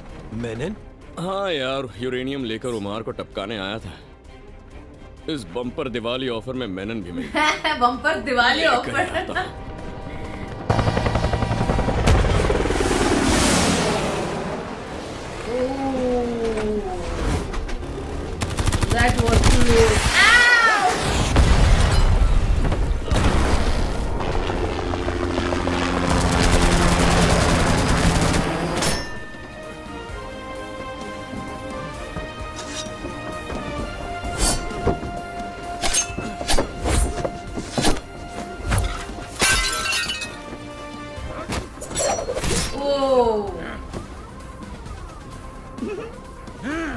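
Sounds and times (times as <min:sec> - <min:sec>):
action film background music: 0:00.0 - 0:46.9
glass shattering: 0:39.4 - 0:40.4.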